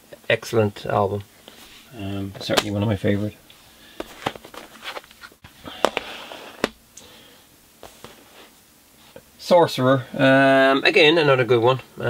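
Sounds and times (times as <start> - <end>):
plastic cases clacking: 4.0 - 6.8.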